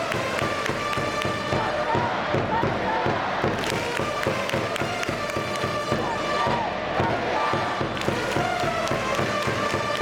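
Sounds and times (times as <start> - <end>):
crowd clapping: 0.0 - 1.6, 3.4 - 6.4, 7.9 - 10.0
drum beats: 0.0 - 10.0
crowd chanting: 1.2 - 10.0
trumpets playing cheer melody: 3.6 - 10.0.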